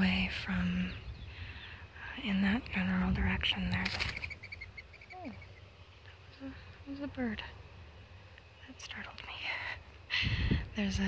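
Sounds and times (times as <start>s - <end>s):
bird calling high notes: 4.2s - 5.7s.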